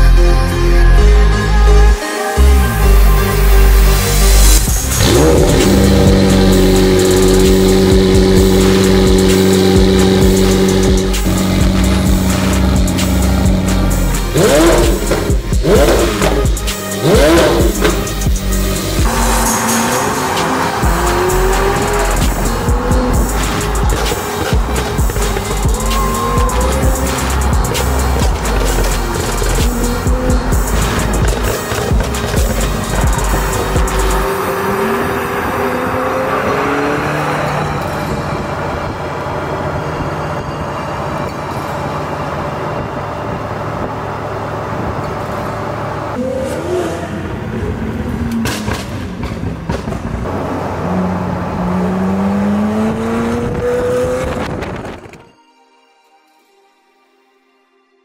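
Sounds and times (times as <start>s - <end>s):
music with heavy bass beat: 0.0s - 37.1s
sports car engine revving: 3.7s - 40.1s, 42.7s - 54.8s.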